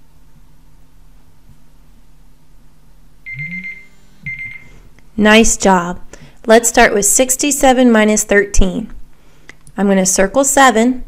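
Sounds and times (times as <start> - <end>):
timer alarm beeping: 3.3 - 4.8.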